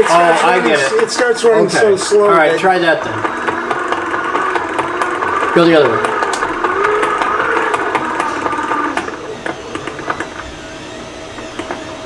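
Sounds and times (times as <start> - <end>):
hand-crank generator whirring: 0.0 - 12.0
gear ticking: 0.9 - 12.0.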